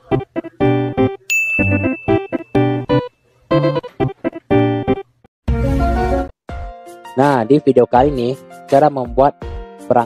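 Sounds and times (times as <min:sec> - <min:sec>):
keyboard intro music: 0:00.0 - 0:10.0
bell-like ding: 0:01.3 - 0:02.6.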